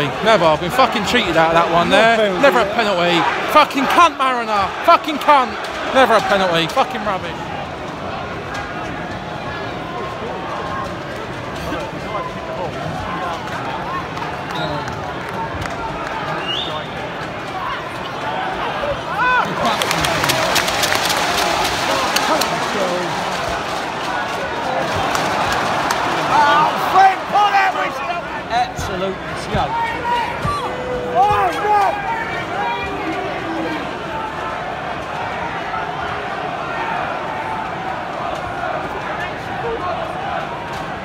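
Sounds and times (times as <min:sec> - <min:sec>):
stadium crowd voices: 0:00.0 - 0:41.0
crowd clapping: 0:13.2 - 0:18.5, 0:19.1 - 0:28.2
loud shouts: 0:18.3 - 0:28.5, 0:29.6 - 0:40.7.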